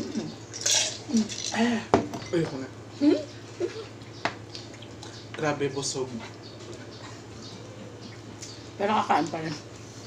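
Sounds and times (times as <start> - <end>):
chewing and mouth sounds: 3.9 - 5.3.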